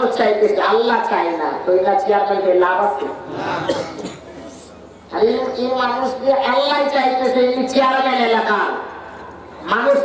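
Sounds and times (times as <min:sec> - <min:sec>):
person coughing: 0:03.0 - 0:04.4.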